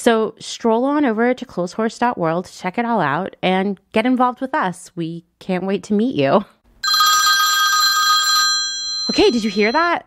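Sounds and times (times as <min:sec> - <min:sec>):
telephone ringing: 0:06.8 - 0:10.0.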